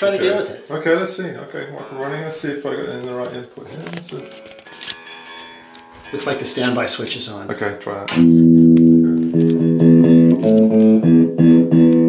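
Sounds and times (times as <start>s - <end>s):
sharp click of amplifier controls: 8.1s - 11.0s.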